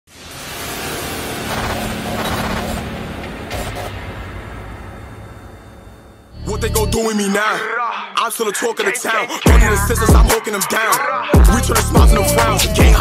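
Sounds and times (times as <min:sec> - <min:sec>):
noise wash: 0:00.1 - 0:06.9
low hum: 0:00.2 - 0:07.0.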